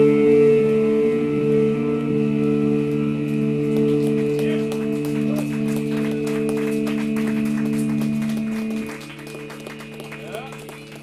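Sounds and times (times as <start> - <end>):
band droning amplified chord: 0.0 - 11.0.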